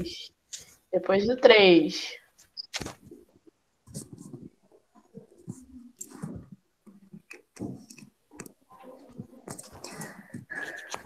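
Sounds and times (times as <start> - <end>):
knocks and rustles: 2.8 - 8.2.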